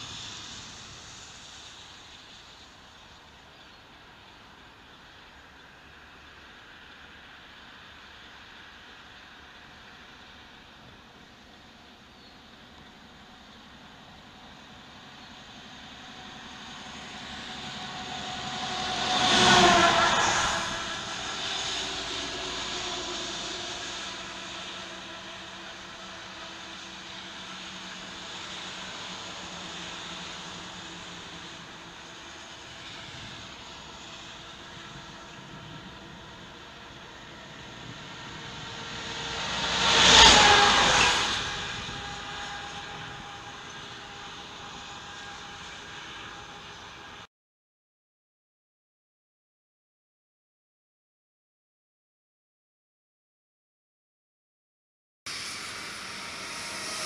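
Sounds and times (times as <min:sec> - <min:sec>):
car road noise on highway: 0:00.0 - 0:47.3, 0:55.3 - 0:57.0
vehicles passing close by: 0:00.0 - 0:47.3, 0:55.3 - 0:57.0.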